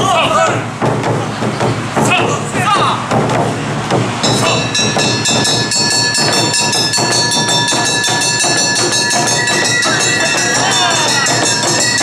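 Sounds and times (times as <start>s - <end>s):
drums beating: 0.0s - 12.0s
hand gong: 4.2s - 12.0s
bamboo flutes: 4.5s - 12.0s.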